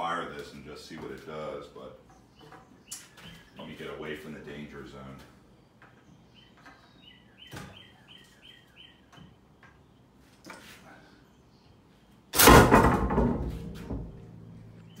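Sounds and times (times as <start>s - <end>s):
spear gun firing smack: 12.4s - 13.2s
metallic clattering rattle: 12.4s - 15.0s.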